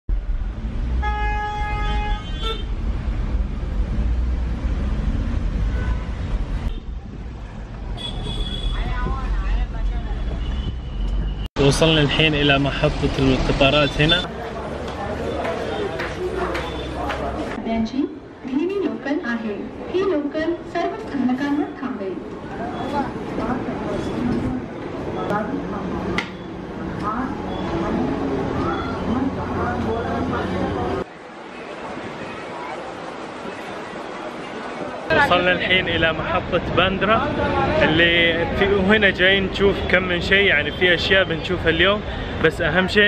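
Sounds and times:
engines rumbling: 0:00.1 - 0:17.6, 0:18.2 - 0:43.0
car horn honking: 0:01.0 - 0:02.7, 0:08.0 - 0:09.0.

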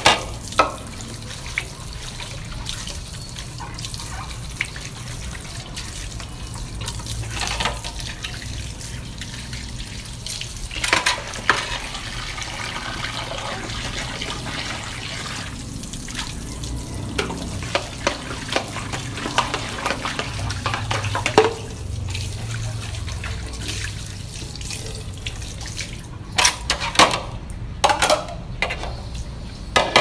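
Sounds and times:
tap water running into sink: 0:00.0 - 0:28.2.

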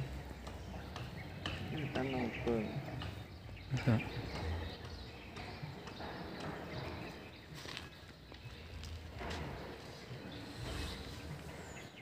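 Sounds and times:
bird chirps: 0:00.0 - 0:12.0.

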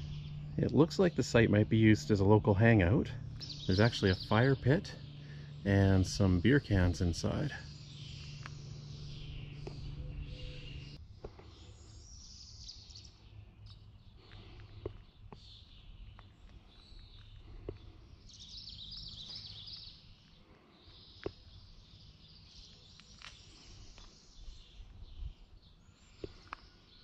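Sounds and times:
birds chirping and singing: 0:00.0 - 0:27.0
low steady outdoor rumble: 0:00.0 - 0:27.0.

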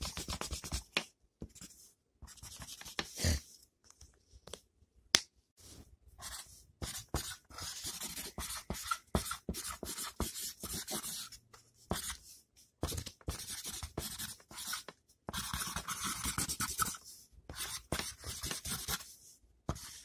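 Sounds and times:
drawing tool scratching on paper: 0:12.8 - 0:19.1.

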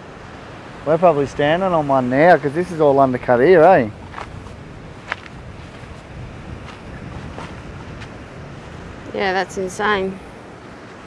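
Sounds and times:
surf breaking on rocks: 0:00.0 - 0:11.0
wind rumbling on microphone: 0:00.0 - 0:11.0.

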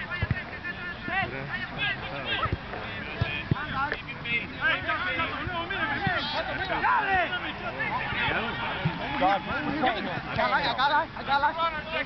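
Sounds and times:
distant players shouting: 0:00.0 - 0:12.0.

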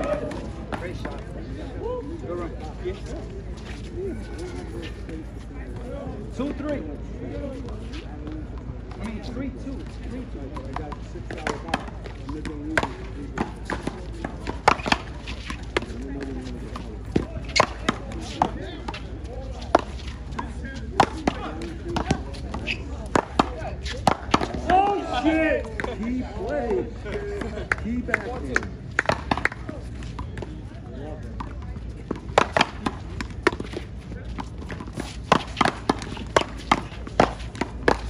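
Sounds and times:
paddles hitting rubber ball: 0:10.6 - 0:19.1, 0:19.7 - 0:26.1, 0:28.1 - 0:30.5, 0:32.1 - 0:38.0.

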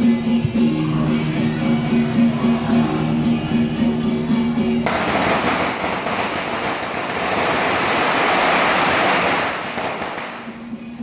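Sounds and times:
firecrackers crackling: 0:04.8 - 0:10.7.

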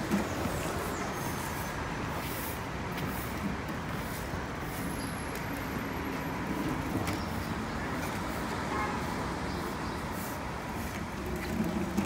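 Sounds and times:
city street traffic: 0:00.0 - 0:12.0.

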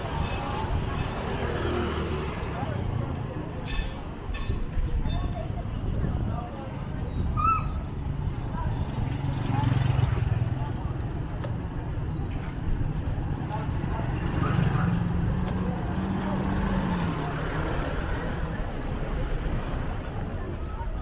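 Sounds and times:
motorcycle engines passing: 0:00.0 - 0:04.8, 0:05.4 - 0:21.0.

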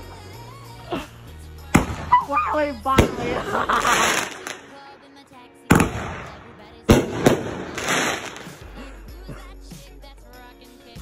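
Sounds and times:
small firework pop: 0:01.8 - 0:02.2
loud firework bangs: 0:01.8 - 0:02.3, 0:03.0 - 0:04.6, 0:05.7 - 0:08.7.

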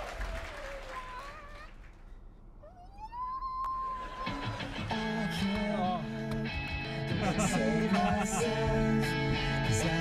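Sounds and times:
man singing: 0:04.2 - 0:10.0.

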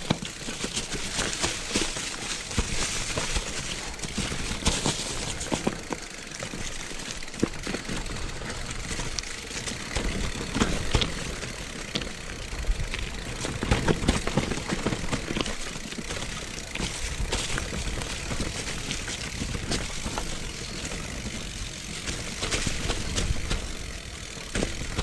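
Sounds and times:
bike knocking and rattling: 0:00.0 - 0:25.0
bike tyres rushing over leaves: 0:00.0 - 0:25.0.

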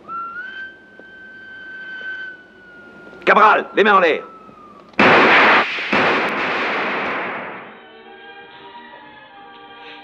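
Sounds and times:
long high whistled note: 0:00.0 - 0:04.9.

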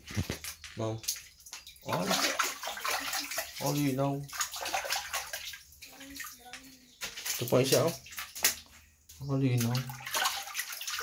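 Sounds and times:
water splashing and sloshing: 0:00.0 - 0:11.0.

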